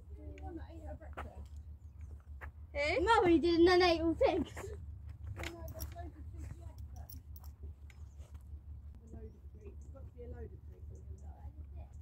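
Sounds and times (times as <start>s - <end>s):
steady low rumble: 0.0s - 12.0s
light clicks and handling noises: 5.0s - 9.2s.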